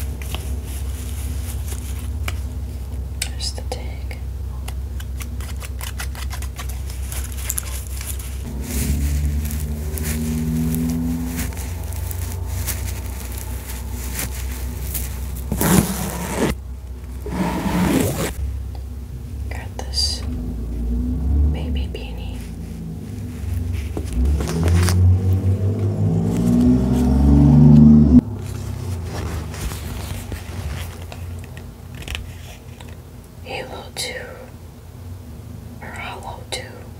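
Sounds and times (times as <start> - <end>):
plush toys rubbing on microphone: 7.2 - 16.6, 17.2 - 18.4.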